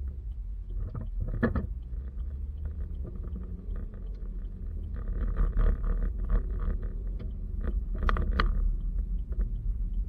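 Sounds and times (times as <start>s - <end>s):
car engine and road rumble: 0.0s - 10.0s
faint ticks: 0.0s - 10.0s.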